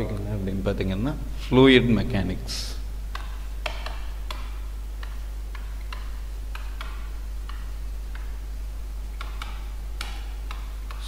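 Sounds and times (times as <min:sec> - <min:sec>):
steady low hum: 0:00.0 - 0:11.0
stylus clicking on whiteboard: 0:03.1 - 0:08.4, 0:09.1 - 0:11.0.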